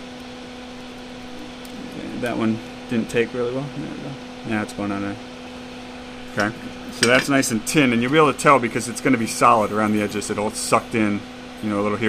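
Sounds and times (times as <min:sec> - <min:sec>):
small fan humming: 0:00.0 - 0:12.0.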